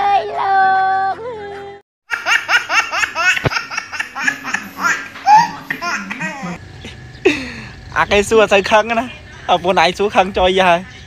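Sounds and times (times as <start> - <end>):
person laughing hard: 7.2 - 7.6.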